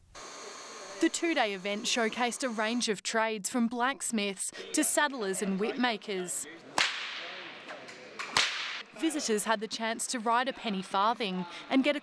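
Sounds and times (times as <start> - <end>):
whip cracking: 6.8 - 7.4, 8.2 - 8.8.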